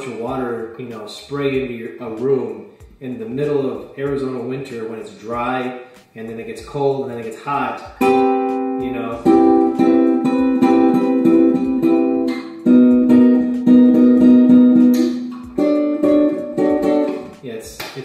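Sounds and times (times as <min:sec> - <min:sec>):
classical guitar fingerpicked chords: 0:08.0 - 0:17.4.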